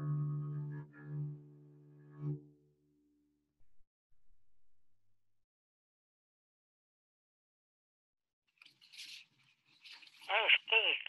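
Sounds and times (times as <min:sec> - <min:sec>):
person saying short syllables: 0:10.3 - 0:11.0.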